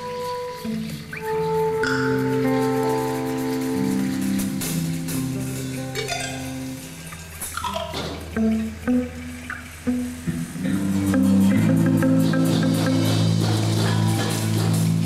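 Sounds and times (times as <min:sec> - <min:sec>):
marimba and percussion band: 0:00.0 - 0:06.9, 0:10.8 - 0:15.0.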